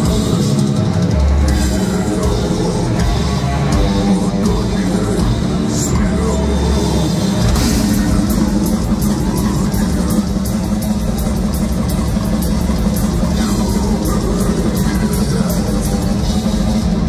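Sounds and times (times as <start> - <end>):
cymbals struck in steady beat: 0.0 - 17.0
distorted guitars and bass: 0.0 - 17.0
drum kit: 0.0 - 17.0.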